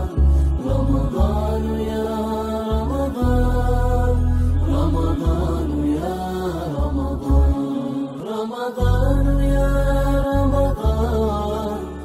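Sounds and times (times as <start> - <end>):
deep low drone: 0.0 - 7.6
voices chanting together: 0.0 - 12.0.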